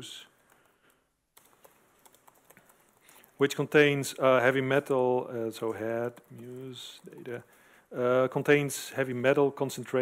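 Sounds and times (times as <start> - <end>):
computer keyboard keystrokes: 0.4 - 3.4, 6.1 - 6.6.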